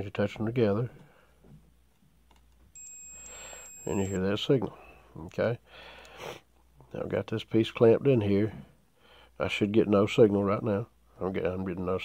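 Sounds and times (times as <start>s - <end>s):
multimeter continuity beep: 2.8s - 4.2s.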